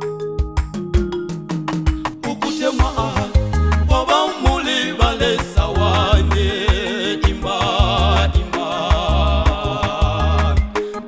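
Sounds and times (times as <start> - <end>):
church choir gospel song: 2.2 - 11.0.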